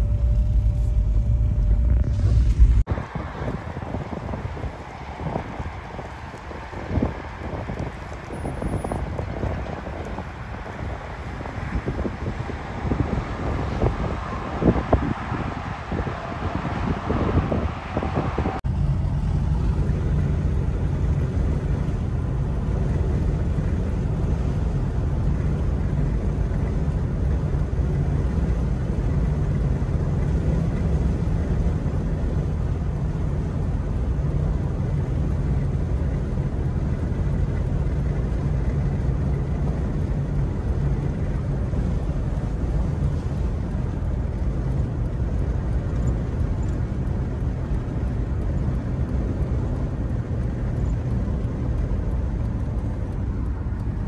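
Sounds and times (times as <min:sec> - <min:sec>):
vehicle driving rumble: 0:00.0 - 0:54.0.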